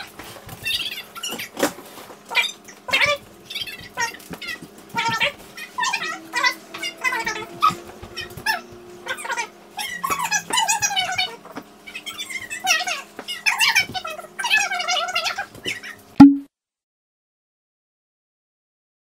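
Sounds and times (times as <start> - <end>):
dogs whining and yipping: 2.4 - 15.9.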